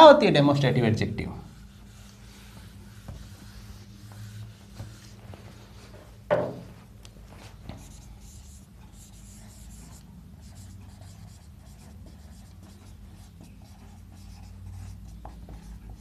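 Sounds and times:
marker writing on whiteboard: 1.5s - 5.9s, 7.5s - 16.0s.

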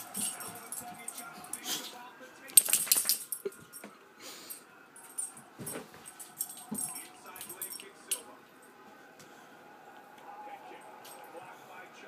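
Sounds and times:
dog collar tags jingling: 0.0s - 1.7s, 2.5s - 3.9s, 5.0s - 8.3s.

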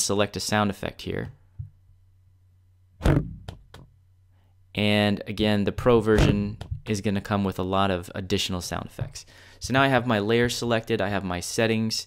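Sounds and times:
rubber ball bouncing: 3.0s - 3.9s.

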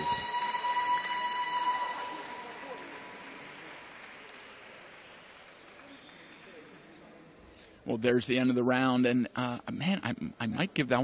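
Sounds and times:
high ringing bell tone: 0.0s - 3.0s
crowd noise: 0.0s - 8.1s.

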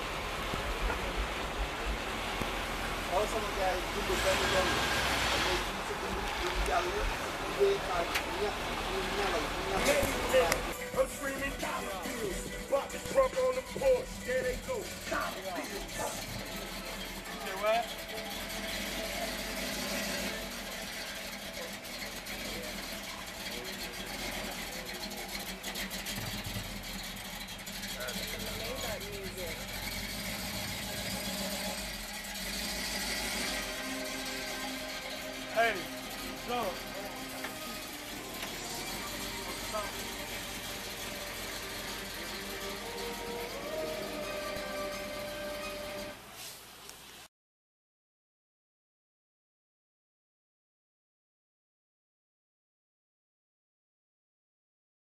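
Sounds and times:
car engine idling: 0.0s - 46.3s
music with vocals: 9.6s - 19.2s.

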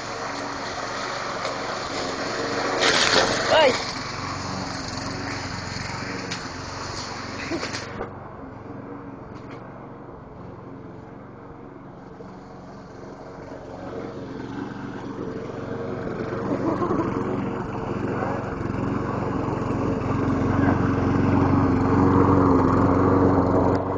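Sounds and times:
engine running steadily: 0.0s - 23.9s.

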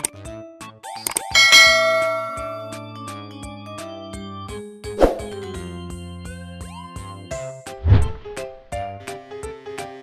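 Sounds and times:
bell strike ringing: 1.4s - 2.9s.

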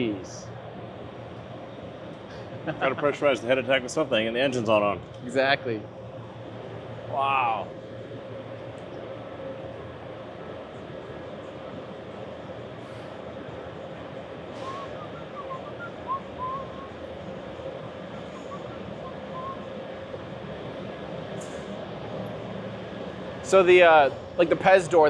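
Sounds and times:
factory hall hum: 0.0s - 25.0s
faint short chirps: 14.5s - 15.6s.

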